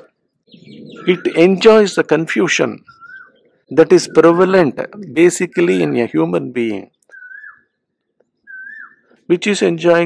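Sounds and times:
bird whistled call: 0:02.9 - 0:03.4, 0:07.1 - 0:07.8, 0:08.4 - 0:09.1.

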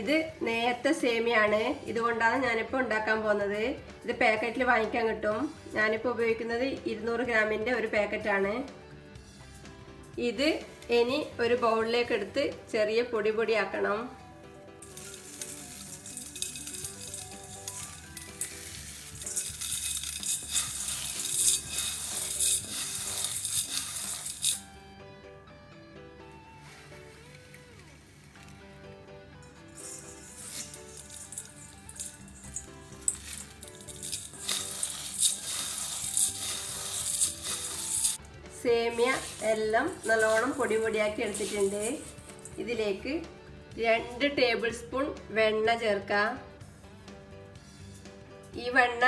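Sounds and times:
background music: 0:00.0 - 0:49.0
dry noodles crackling: 0:14.8 - 0:24.6, 0:29.8 - 0:38.2.

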